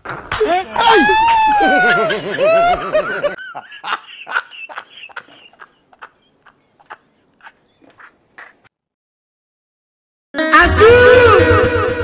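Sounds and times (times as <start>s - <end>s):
man laughing: 0.8s - 8.6s.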